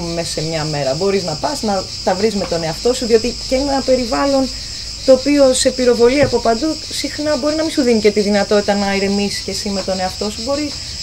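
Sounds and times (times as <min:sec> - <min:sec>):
woman talking: 0:00.0 - 0:10.8
insects chirping: 0:00.0 - 0:11.0.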